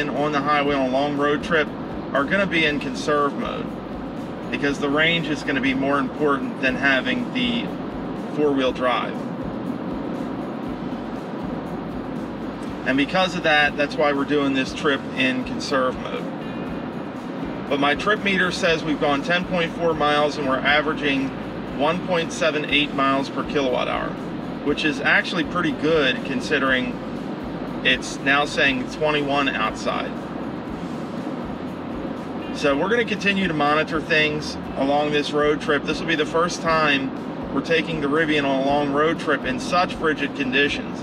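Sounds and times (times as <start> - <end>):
road and tyre noise in cabin: 0.0 - 41.0.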